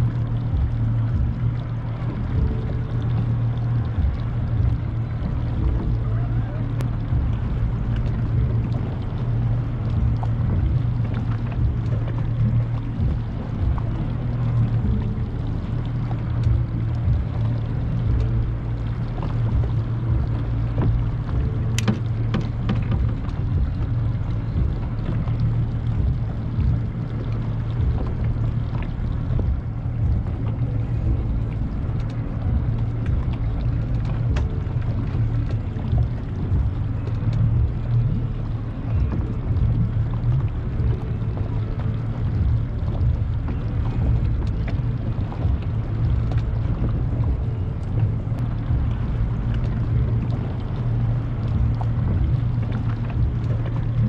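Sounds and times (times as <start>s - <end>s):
motorboat engine humming: 0.0s - 54.0s
wind buffeting microphone: 0.0s - 54.0s
sharp knocks or clicks: 21.8s - 23.7s.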